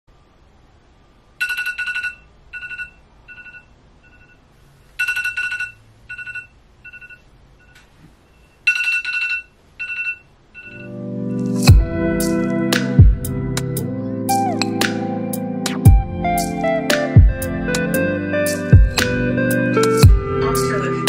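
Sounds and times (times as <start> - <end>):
smartphone alarm beeping: 1.4 - 4.4, 5.0 - 11.0.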